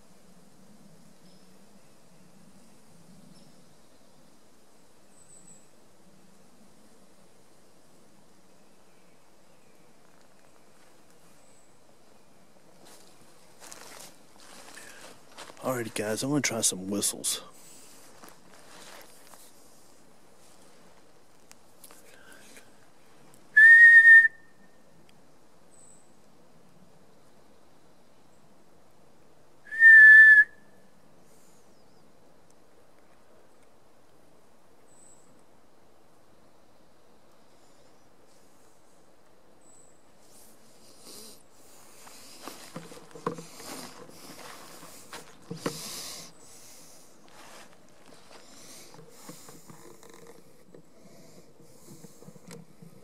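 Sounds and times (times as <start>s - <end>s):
faint steady hiss: 0.0s - 53.0s
short rustle: 17.6s - 21.2s, 40.2s - 50.6s
person whistling a note: 23.6s - 24.6s, 29.7s - 30.6s.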